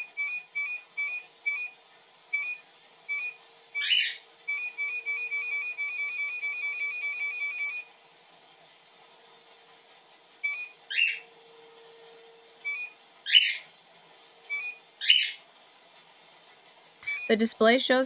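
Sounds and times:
falling chirp: 0:02.3 - 0:07.8, 0:10.4 - 0:11.3, 0:12.6 - 0:13.7, 0:14.5 - 0:15.4, 0:17.0 - 0:17.3
short beeps: 0:17.0 - 0:17.4.

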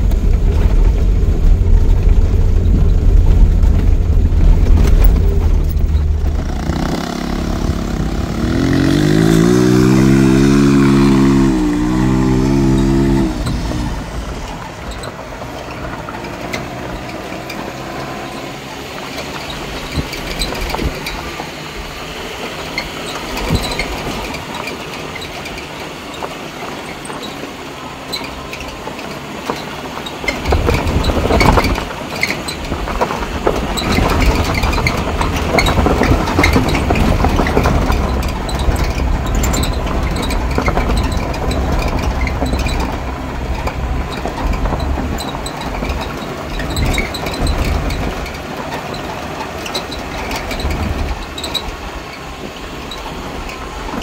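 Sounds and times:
vehicle engine revving: 0:00.0 - 0:25.6, 0:30.1 - 0:54.0
vehicle rumbling on dirt track: 0:00.0 - 0:54.0.

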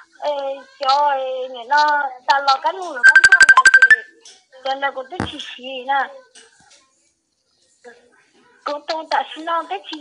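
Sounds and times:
rapid electronic phone beeps: 0:03.0 - 0:04.0.

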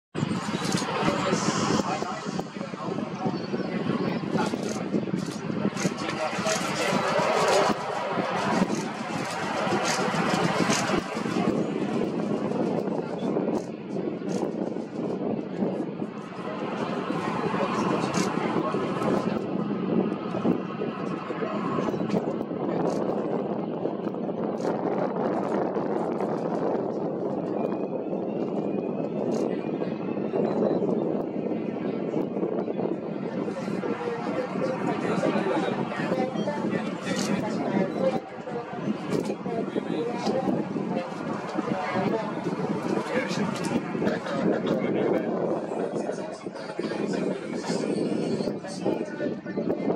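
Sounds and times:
indistinct voices: 0:00.2 - 0:23.5, 0:28.4 - 0:49.9
turboprop airliner taxiing: 0:00.2 - 0:48.8.

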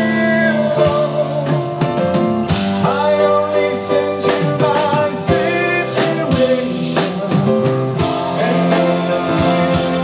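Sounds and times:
drum kit hits: 0:00.0 - 0:10.0
electric guitar playing: 0:00.0 - 0:10.0.

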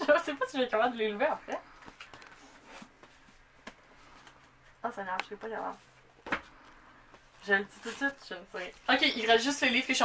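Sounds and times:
books rustling: 0:01.7 - 0:04.6, 0:05.7 - 0:10.0
soft knocks of books: 0:01.8 - 0:04.4, 0:06.2 - 0:07.3.

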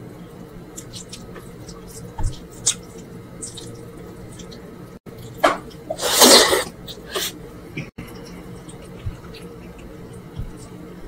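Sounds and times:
wet mouth noises eating: 0:00.7 - 0:10.8.

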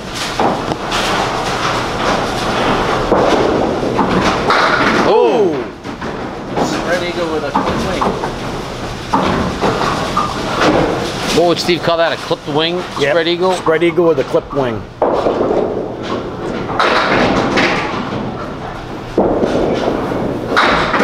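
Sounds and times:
bowling balls knocking pins: 0:00.0 - 0:21.0
bowling balls rolling on wooden lane: 0:00.0 - 0:21.0
voices: 0:05.0 - 0:05.7, 0:11.3 - 0:14.9.

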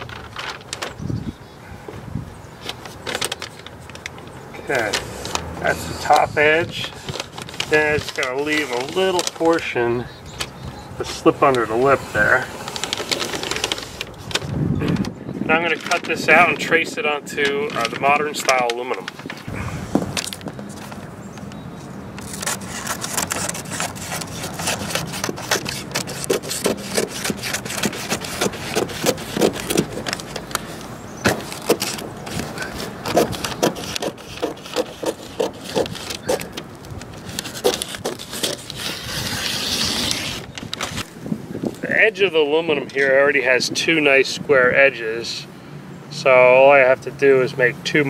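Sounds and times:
paper rustling: 0:00.0 - 0:01.0, 0:02.6 - 0:21.1, 0:22.2 - 0:41.1
scissors snipping paper: 0:22.2 - 0:30.6, 0:31.2 - 0:36.6, 0:37.2 - 0:40.4.

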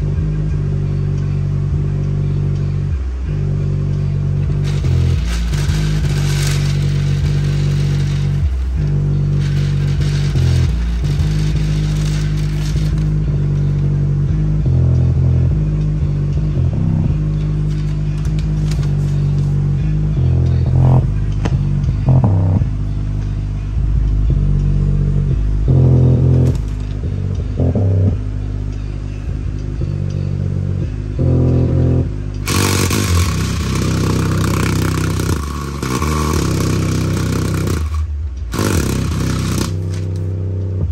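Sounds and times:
bass-heavy music from speaker: 0:00.0 - 0:40.9
harsh hiss-like noise: 0:04.5 - 0:13.2.

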